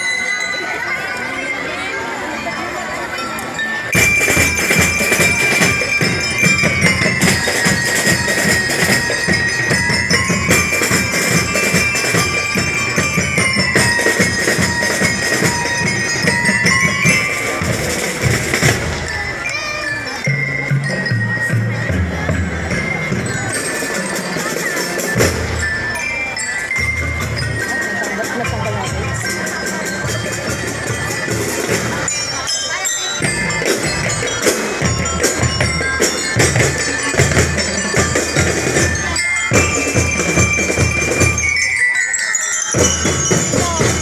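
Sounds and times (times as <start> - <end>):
bell-lyre melody: 0.0 - 44.0
drum and lyre band playing: 3.4 - 44.0
snare and bass drums: 4.0 - 19.3, 33.2 - 41.6, 42.8 - 44.0.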